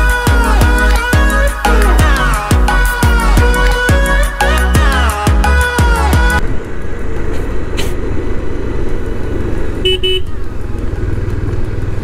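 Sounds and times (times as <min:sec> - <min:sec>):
road and wind rush: 0:04.9 - 0:12.0
motorcycle engine running: 0:05.8 - 0:12.0
vehicle horn short beeps: 0:09.8 - 0:10.4.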